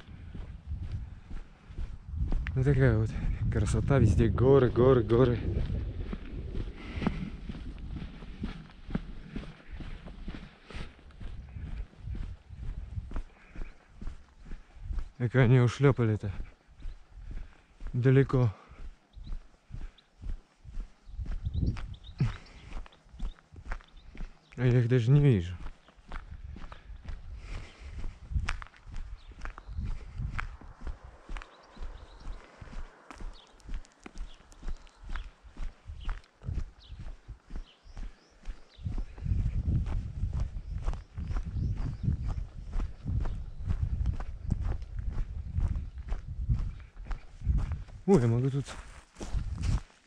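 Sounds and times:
footsteps on asphalt: 0:00.0 - 0:50.0
footsteps on gravel: 0:00.0 - 0:50.0
person speaking: 0:02.5 - 0:05.6, 0:17.9 - 0:18.6, 0:24.6 - 0:25.6, 0:48.0 - 0:48.9.

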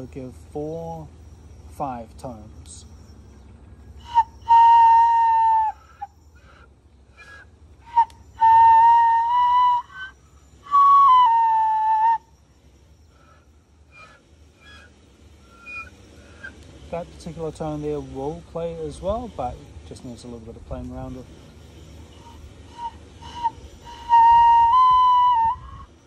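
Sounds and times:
bone flute long notes: 0:03.9 - 0:12.4, 0:13.1 - 0:16.7, 0:21.8 - 0:26.0.

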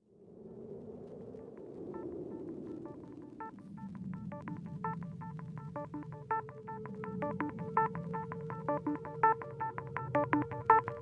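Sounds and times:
low synth drone: 0:01.9 - 0:11.0
high electronic bleeps: 0:05.6 - 0:11.0.

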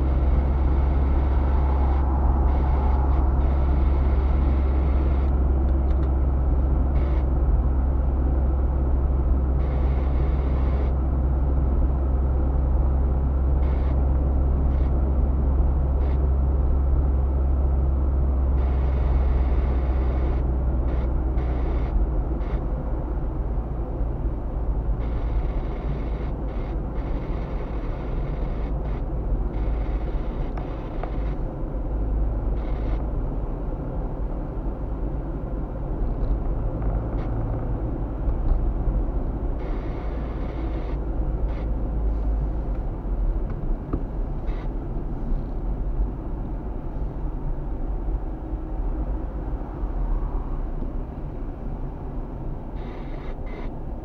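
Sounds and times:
car engine and road noise: 0:00.0 - 0:54.0.

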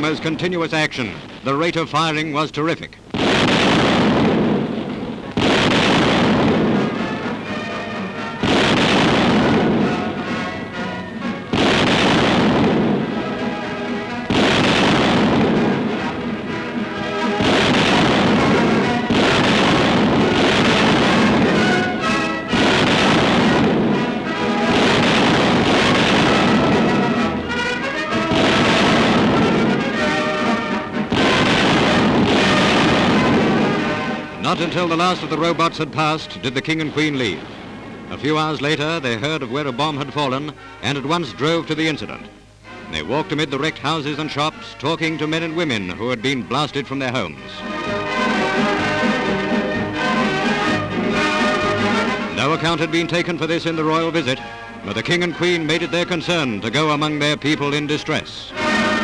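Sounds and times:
newsreel music: 0:00.0 - 0:59.0
anti-aircraft guns firing: 0:03.1 - 0:07.6, 0:08.3 - 0:10.5, 0:11.5 - 0:40.4, 0:58.6 - 0:59.0.

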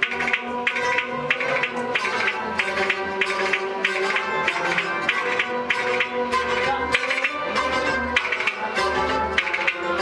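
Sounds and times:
hand drum beats: 0:00.0 - 0:07.6
sustained bowed string tones: 0:00.0 - 0:10.0.

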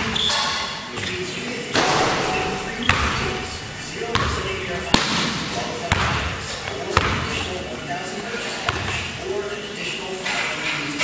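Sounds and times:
basketball bouncing on wood floor: 0:04.1 - 0:04.6, 0:05.9 - 0:06.3, 0:06.9 - 0:07.4.

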